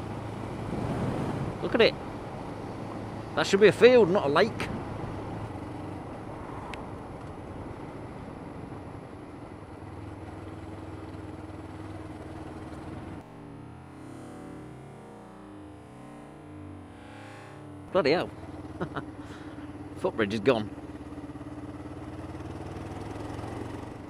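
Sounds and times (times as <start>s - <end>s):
wind and road noise: 0.0s - 24.0s
motorcycle engine running: 1.4s - 24.0s.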